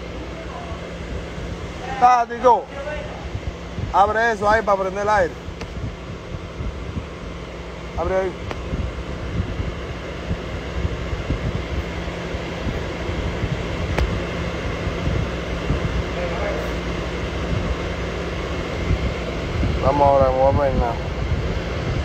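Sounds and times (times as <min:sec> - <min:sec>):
car air conditioning blowing: 0:00.0 - 0:22.0
constant low hum: 0:00.0 - 0:22.0.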